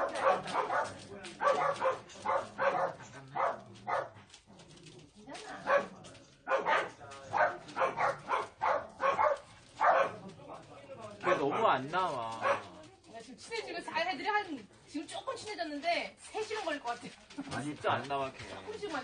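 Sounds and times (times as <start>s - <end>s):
dogs barking: 0.0s - 4.3s, 5.6s - 10.3s, 11.2s - 12.8s.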